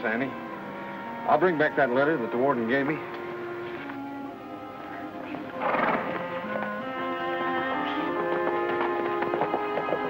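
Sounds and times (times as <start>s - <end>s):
sustained background score: 0.0s - 10.0s
horse whinnying: 5.5s - 8.3s.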